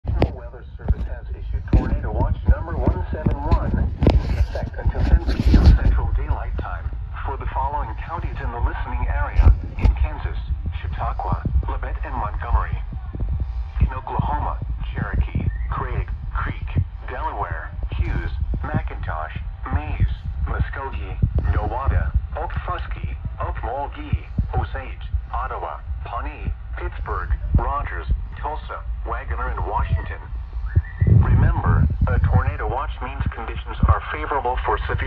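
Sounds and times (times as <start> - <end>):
low thumps: 0.0 - 34.0
steady low hum: 0.0 - 35.0
broadcast voice on small speaker: 0.1 - 35.0.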